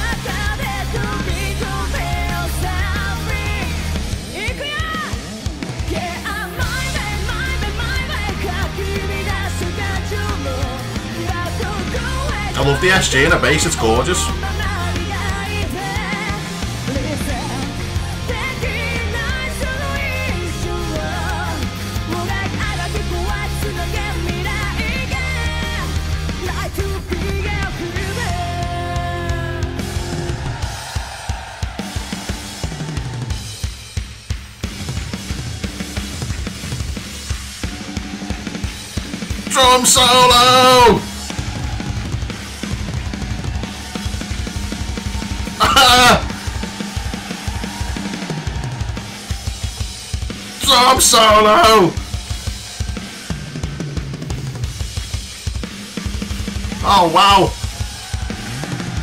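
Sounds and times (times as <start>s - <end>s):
rock drum solo: 0.0s - 59.0s
band holding notes: 9.2s - 21.2s, 39.5s - 42.5s, 43.9s - 49.4s, 50.4s - 52.0s, 56.8s - 57.6s.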